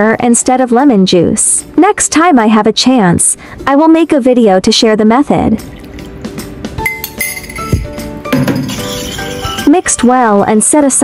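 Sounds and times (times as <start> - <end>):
background music: 0.0 - 11.0
metal spoon clinking ceramic bowl: 6.8 - 9.7.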